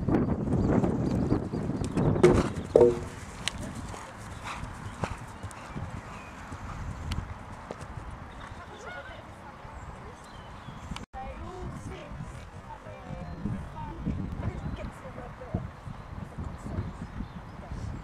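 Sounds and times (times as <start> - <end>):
wind buffeting microphone: 0.0 - 9.0, 9.6 - 18.0.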